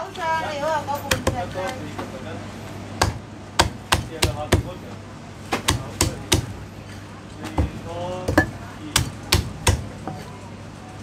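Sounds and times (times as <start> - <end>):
cleaver chopping on wooden block: 1.1 - 1.5, 3.0 - 4.8, 5.5 - 6.6, 7.5 - 9.9.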